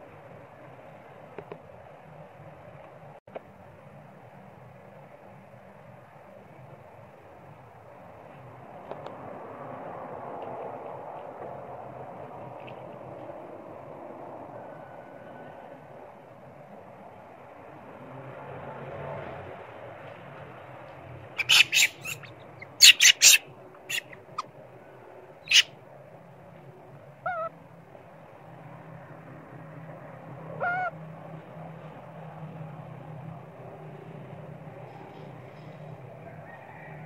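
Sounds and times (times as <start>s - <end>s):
monkey wavering calls: 21.4s - 24.5s, 25.4s - 25.7s, 27.2s - 27.5s, 30.6s - 31.0s
monkeys screeching: 21.4s - 24.5s, 25.4s - 25.7s.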